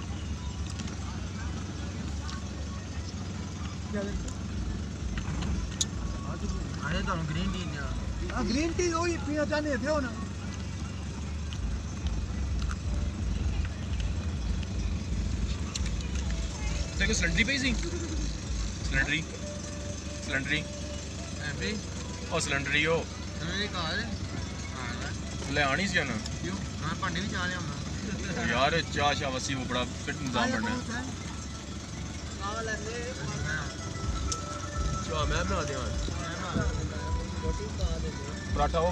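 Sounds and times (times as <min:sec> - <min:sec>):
car engine and tyres rumbling: 0:00.0 - 0:38.9
people talking casually: 0:00.0 - 0:38.9.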